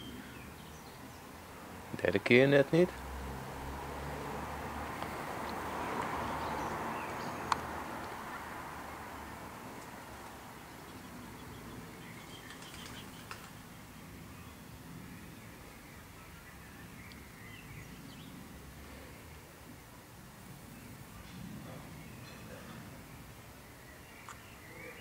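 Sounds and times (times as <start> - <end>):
background hiss: 0.0 - 25.0.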